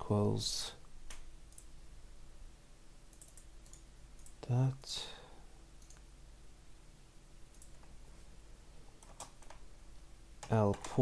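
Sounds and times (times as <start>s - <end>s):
computer keyboard clicks: 3.1s - 4.4s, 9.0s - 9.6s.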